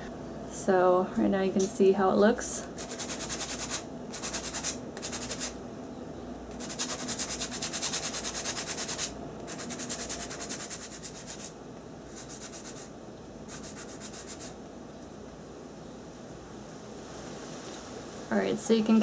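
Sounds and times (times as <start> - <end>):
sanding block rubbing: 2.8 - 5.6, 6.5 - 12.9, 13.5 - 14.6.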